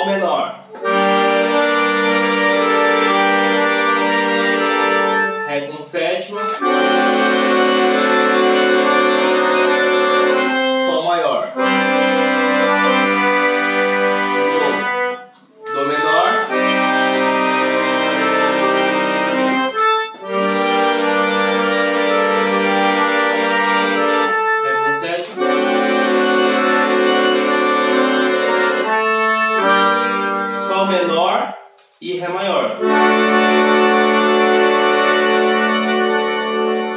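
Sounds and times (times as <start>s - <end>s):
piano accordion chords: 0.0s - 36.9s.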